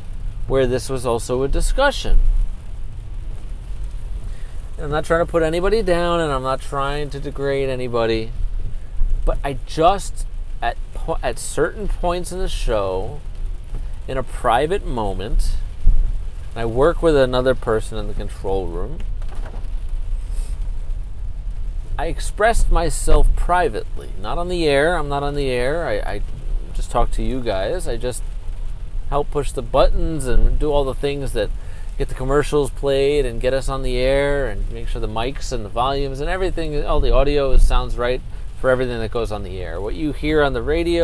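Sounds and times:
car cabin rumble: 0.0 - 41.0
soft hiss: 0.0 - 41.0
person speaking: 4.8 - 8.3, 9.3 - 13.2, 22.0 - 28.2, 29.1 - 41.0.

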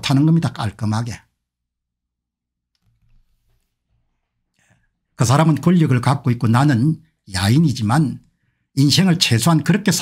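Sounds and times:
man speaking: 0.0 - 1.3, 5.2 - 8.2, 8.8 - 10.0.

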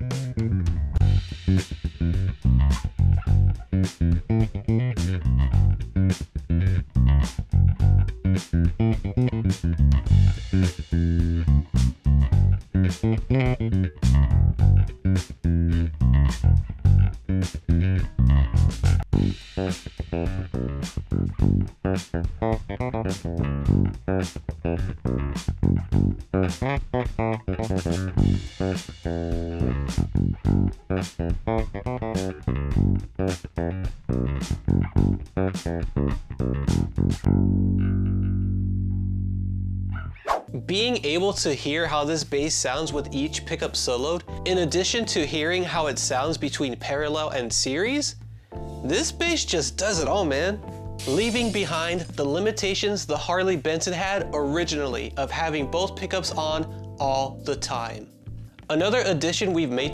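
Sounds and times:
drums: 0.0 - 37.3, 49.9 - 55.9
electric bass played fingerstyle: 0.0 - 59.9.

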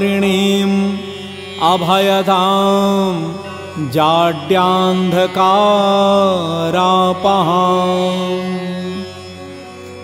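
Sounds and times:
man chanting a hymn: 0.0 - 9.3
instrumental drone: 0.0 - 10.0.

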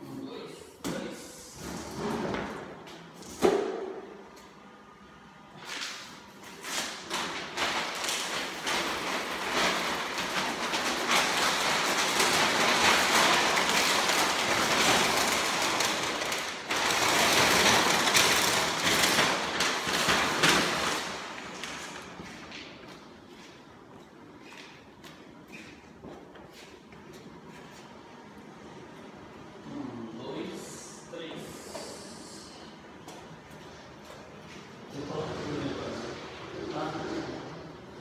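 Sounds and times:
membrane sheet rustling and crackling: 5.6 - 23.7.

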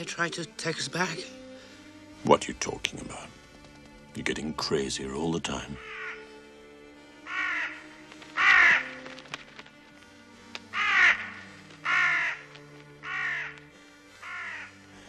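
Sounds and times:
film score low held notes: 0.0 - 15.0
crows cawing: 5.8 - 15.0.

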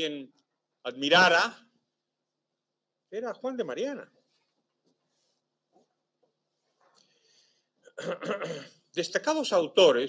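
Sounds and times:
man clearing his throat: 7.9 - 8.8.

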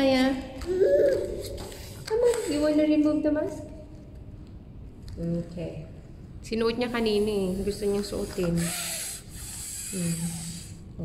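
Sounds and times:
woman humming: 9.8 - 10.8.

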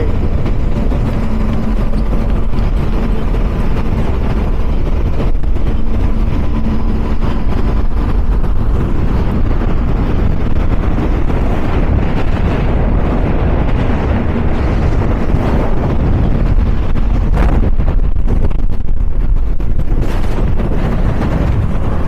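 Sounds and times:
powerboat engines roaring: 0.0 - 22.0
wind and water rushing: 0.0 - 22.0.

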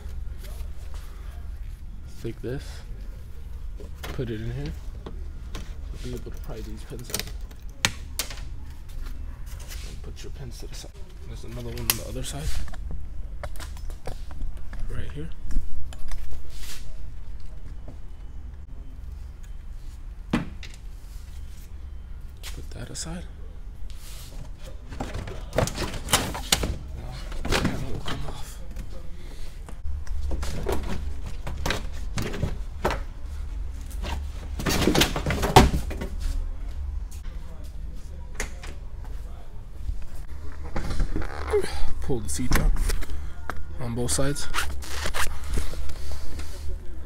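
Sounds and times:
low steady hum: 0.0 - 47.0.

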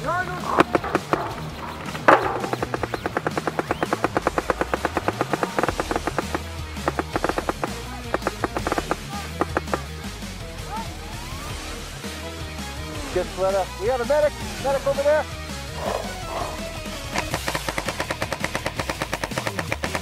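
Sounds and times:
background music: 0.0 - 20.0
paintball marker firing: 0.4 - 10.1, 17.1 - 20.0.

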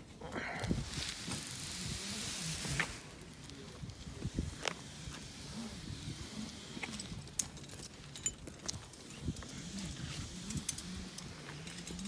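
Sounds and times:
gear clicking against rock: 6.4 - 12.0.

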